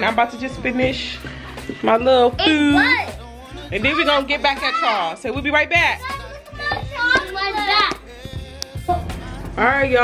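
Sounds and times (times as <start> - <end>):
background music: 0.0 - 10.0
children chattering and calling out: 2.4 - 5.2, 6.0 - 9.1.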